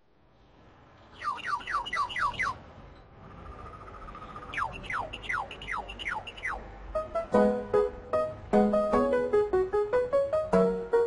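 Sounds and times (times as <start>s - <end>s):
bird chirping and whistling: 1.1s - 2.6s, 3.5s - 6.6s.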